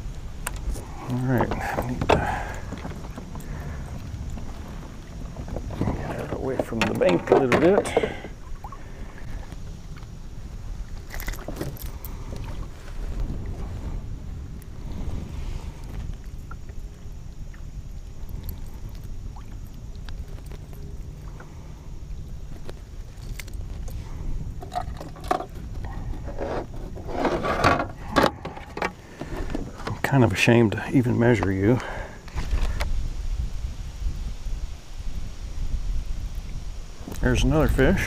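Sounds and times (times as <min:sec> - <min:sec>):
wind and water rumble: 0:00.0 - 0:38.0.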